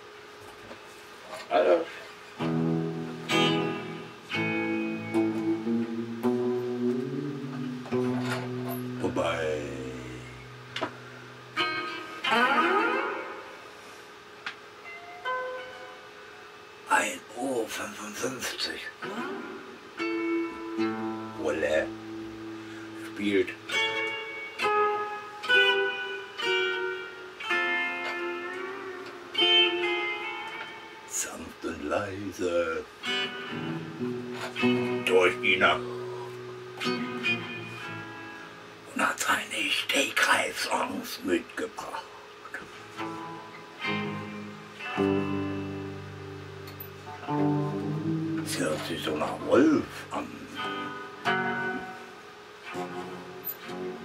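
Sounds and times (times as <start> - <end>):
electric guitar picked slowly: 2.4 - 16.7, 19.0 - 31.2, 33.0 - 38.9, 42.2 - 54.0.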